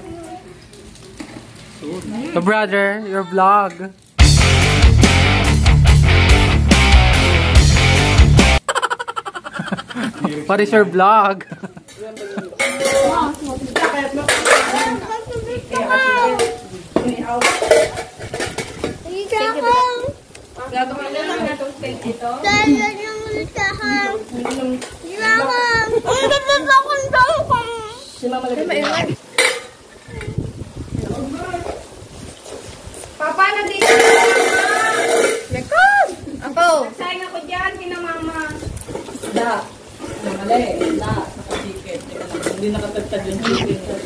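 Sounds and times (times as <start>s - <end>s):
voices in background: 10.0s - 32.0s, 33.2s - 44.0s
cutlery and dishes clinking: 11.8s - 15.0s, 16.3s - 19.0s, 29.3s - 29.8s, 33.8s - 35.5s, 38.9s - 43.0s.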